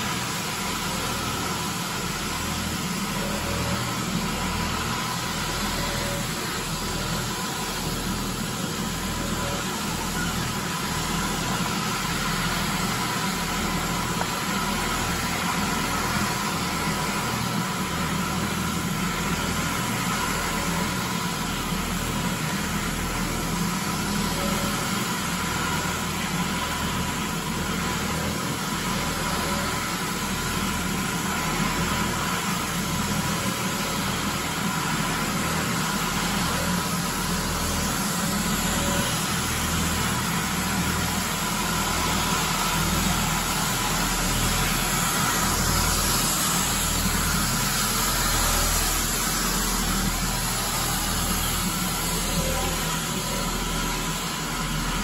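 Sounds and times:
floor scrubber droning: 0.0s - 55.0s.

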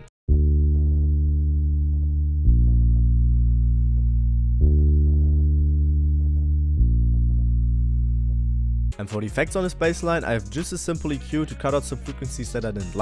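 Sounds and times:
deep electric bass notes: 0.3s - 10.7s.

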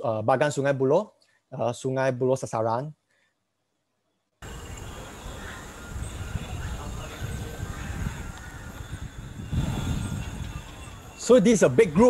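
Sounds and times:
wind on microphone: 4.4s - 12.0s.

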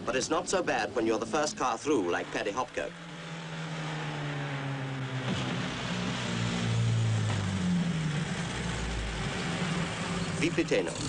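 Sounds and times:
car engine accelerating hard: 1.0s - 11.0s.

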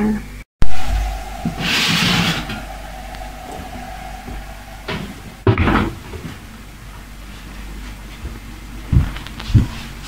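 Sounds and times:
faint steady hum: 0.6s - 7.4s.

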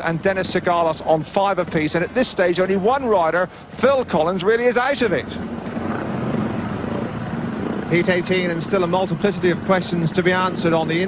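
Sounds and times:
motorcycle engines running: 0.0s - 11.0s.

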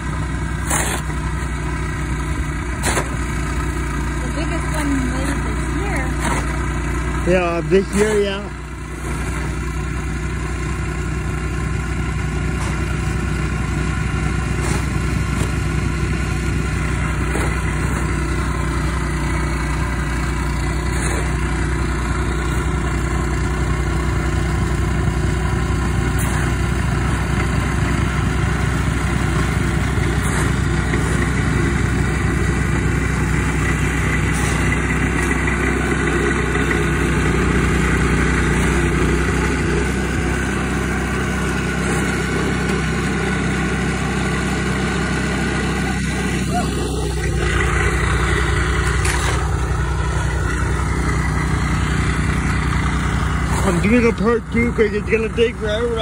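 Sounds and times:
snowplow engine running: 0.0s - 56.0s.

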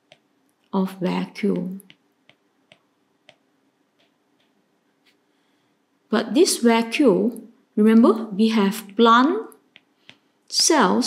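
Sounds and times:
stylus tapping on screen: 0.0s - 0.4s, 1.4s - 5.2s, 9.6s - 10.3s.

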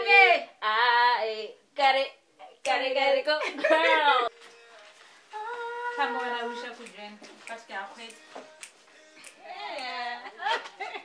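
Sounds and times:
woman singing unaccompanied: 0.0s - 4.3s, 5.3s - 10.5s.

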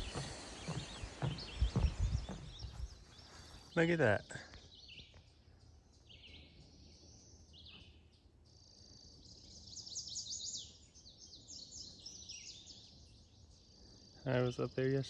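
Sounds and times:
faint birdsong chirps and trills: 0.0s - 15.0s.

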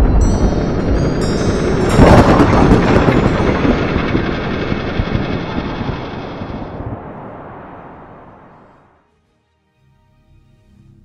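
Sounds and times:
high ringing chime tones: 0.0s - 6.3s
dense rumble: 0.0s - 8.9s
sudden boom: 0.0s - 8.9s.

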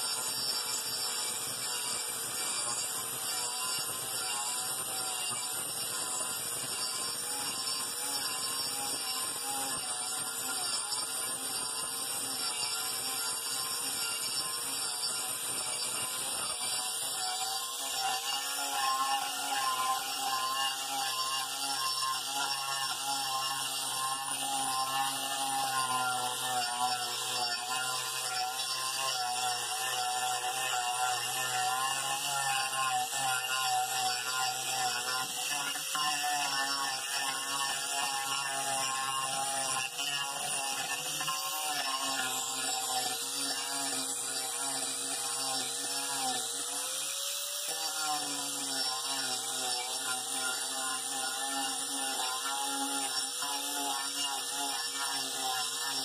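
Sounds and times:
angle grinder grinding wood: 0.0s - 56.0s.

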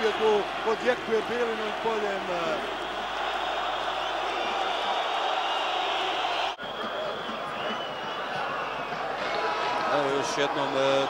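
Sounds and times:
stadium crowd cheering: 0.0s - 11.0s.

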